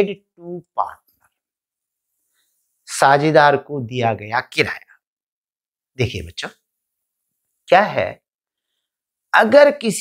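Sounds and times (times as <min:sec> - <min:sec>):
man speaking: 0:00.0 - 0:01.1, 0:02.9 - 0:05.0, 0:06.0 - 0:06.6, 0:07.6 - 0:08.3, 0:09.3 - 0:10.0.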